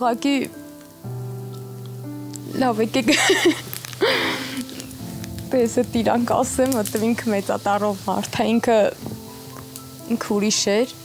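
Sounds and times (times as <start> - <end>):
soft background music chord: 0.0 - 11.0
woman's tearful utterance: 3.4 - 4.8.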